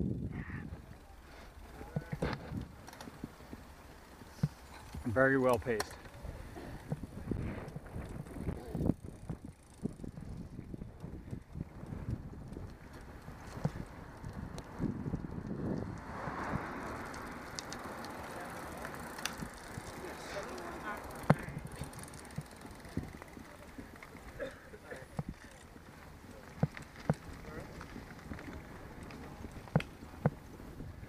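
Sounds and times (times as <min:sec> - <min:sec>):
wind rushing over microphone: 0:00.0 - 0:03.7, 0:06.2 - 0:20.0
tyre and road rumble: 0:00.0 - 0:31.0
bicycle knocks and rattles: 0:01.7 - 0:15.9, 0:17.0 - 0:31.0.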